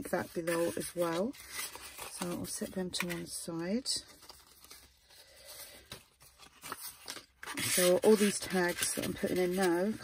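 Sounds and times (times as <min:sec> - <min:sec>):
paper rustling: 0:04.0 - 0:10.0.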